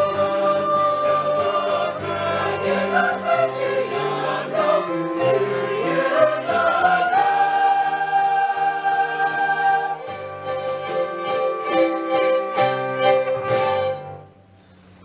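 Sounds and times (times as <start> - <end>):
choir singing in harmony: 0.0 - 14.1.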